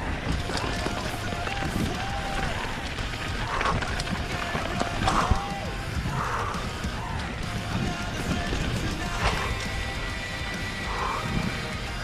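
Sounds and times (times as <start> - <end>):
bike rattling over bumps: 0.0 - 12.0
bike tyres rolling over leaves: 0.0 - 12.0.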